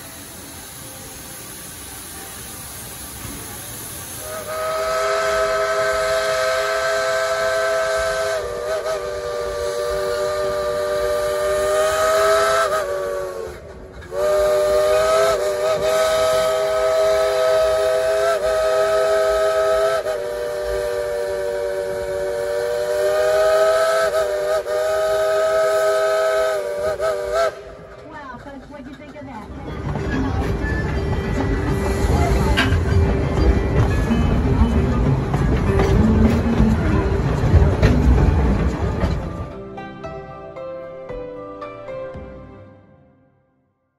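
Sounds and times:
steam locomotive whistle: 3.8s - 27.9s.

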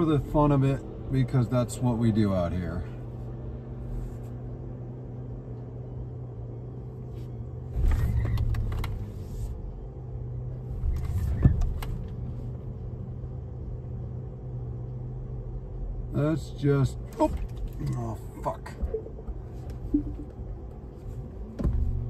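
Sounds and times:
electric car cabin hum: 0.0s - 22.0s.

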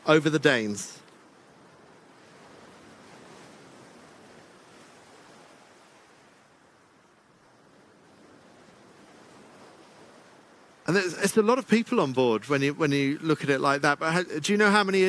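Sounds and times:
water: 0.0s - 15.0s
wind: 0.0s - 15.0s.

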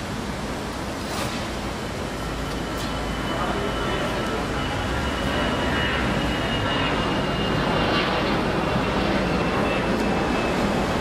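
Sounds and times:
faint high whine: 0.0s - 11.0s
rumble of traffic and engines: 0.0s - 11.0s.

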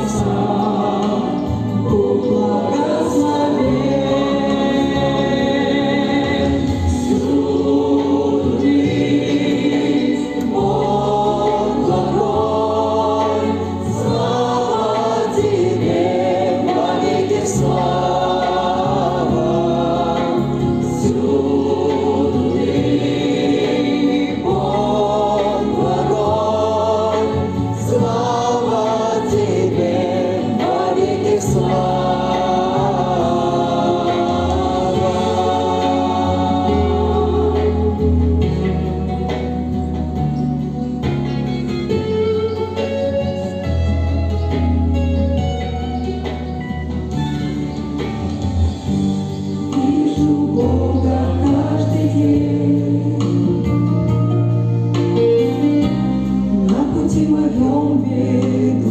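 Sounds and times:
group singing a hymn: 0.0s - 40.6s, 48.0s - 58.9s
instrumental accompaniment: 0.0s - 58.9s.

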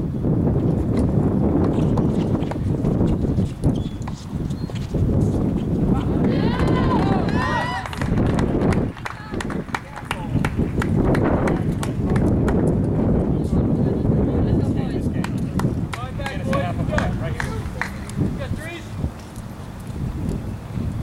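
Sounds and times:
microphone rumble: 0.0s - 19.2s.

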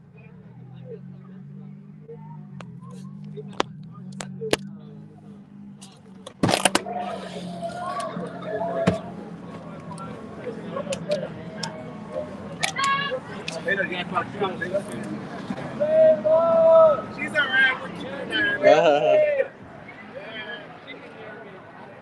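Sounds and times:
car interior hum: 0.0s - 19.5s
street noise: 0.0s - 22.0s
voices outside: 0.0s - 22.0s.

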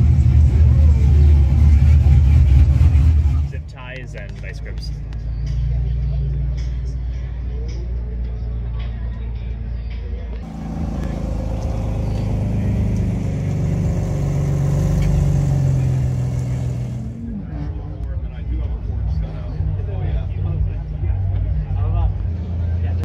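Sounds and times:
car engines idling: 0.0s - 23.0s
people talking: 3.3s - 5.0s, 15.0s - 23.0s.

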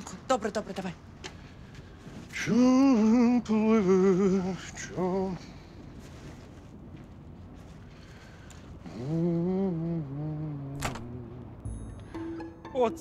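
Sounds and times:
quiet street ambience: 0.0s - 13.0s
man humming: 8.8s - 11.6s.

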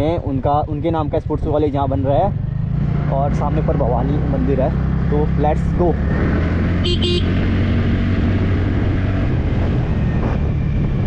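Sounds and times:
road noise: 0.0s - 11.0s
wind noise on microphone: 6.1s - 11.0s
scooter engine running: 6.8s - 7.6s.

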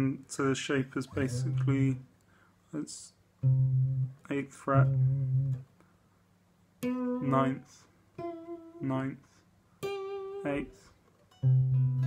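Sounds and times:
electric guitar notes: 1.2s - 2.0s, 3.4s - 5.6s, 6.8s - 7.6s, 9.8s - 12.0s.

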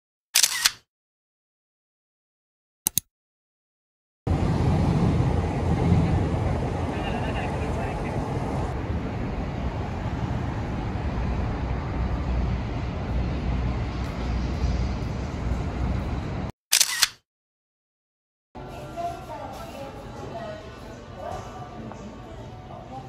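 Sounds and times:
road traffic rumble: 4.3s - 16.5s
street noise: 4.3s - 17.1s.

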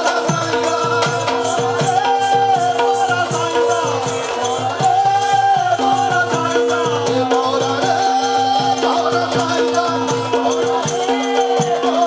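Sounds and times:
drum beat: 0.0s - 12.0s
jingling rattle percussion: 0.0s - 12.0s.

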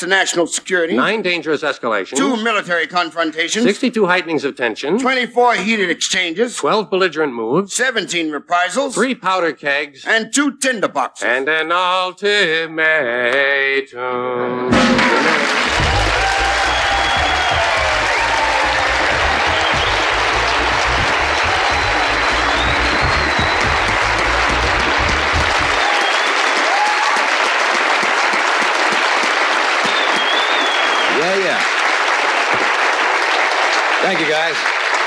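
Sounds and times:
music with low steady beat: 14.7s - 25.8s
audience applauding: 14.7s - 35.0s.

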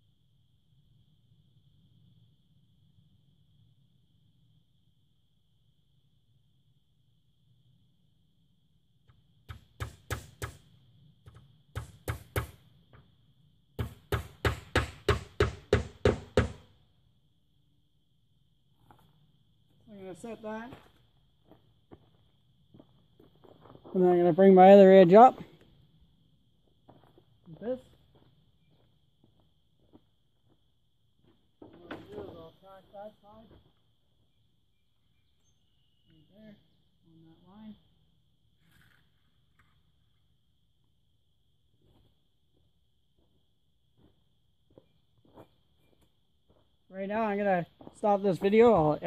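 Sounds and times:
faint footsteps on dirt: 18.8s - 19.9s, 20.5s - 24.4s, 25.2s - 34.4s, 38.6s - 40.2s, 41.7s - 46.9s, 47.6s - 49.0s.

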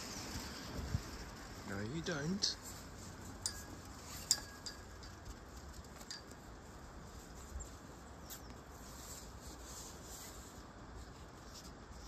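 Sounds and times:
light rustling: 0.0s - 12.0s
low wind rumble: 0.0s - 12.0s.

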